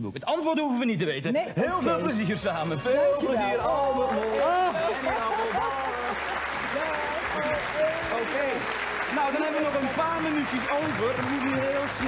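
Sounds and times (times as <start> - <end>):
audience applauding: 1.8 - 12.0.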